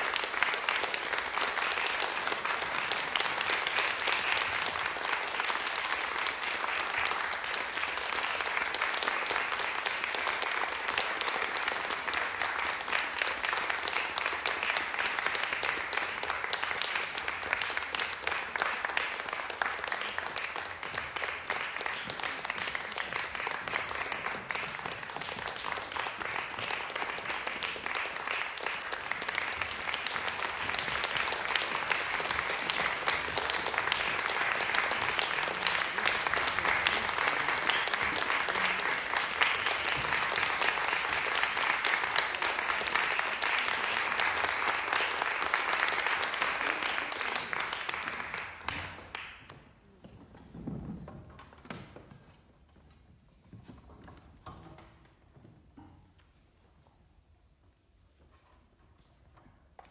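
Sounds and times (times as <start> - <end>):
audience applauding: 0.0 - 49.6.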